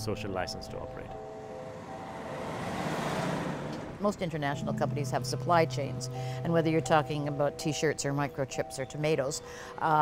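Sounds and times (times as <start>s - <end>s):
road traffic passing: 0.0s - 8.8s.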